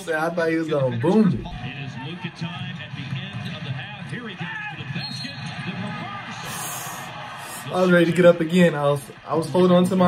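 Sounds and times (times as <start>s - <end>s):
arena crowd noise: 0.0s - 10.0s
commentator talking: 0.0s - 10.0s.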